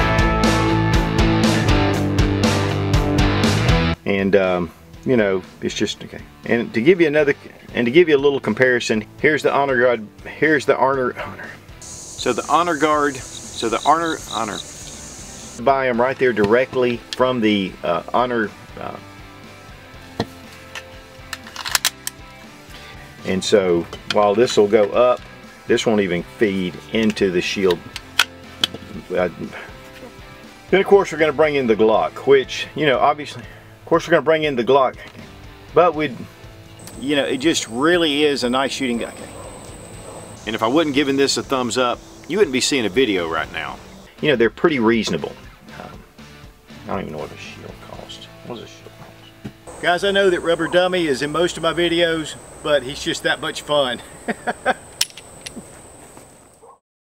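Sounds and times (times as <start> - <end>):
pistol magazine metallic clicks: 21.3 - 22.2, 55.0 - 55.6
man laughing: 53.9 - 55.0
sharp click: 55.0 - 55.6.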